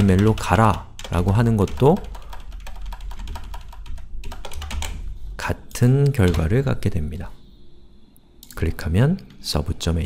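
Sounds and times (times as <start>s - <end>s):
computer keyboard typing: 0.0s - 5.0s, 6.0s - 6.5s.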